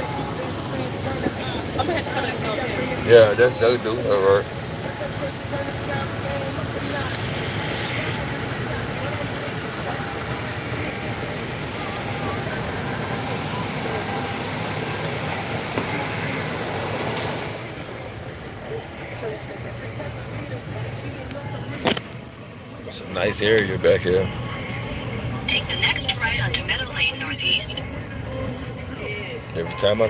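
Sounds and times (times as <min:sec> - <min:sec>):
car cabin road and engine noise: 0:00.0 - 0:30.0.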